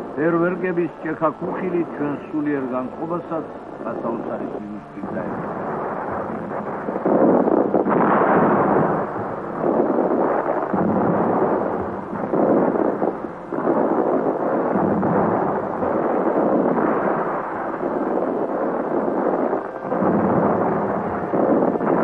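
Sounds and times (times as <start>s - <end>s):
fireworks booming and crackling: 0.0s - 22.0s.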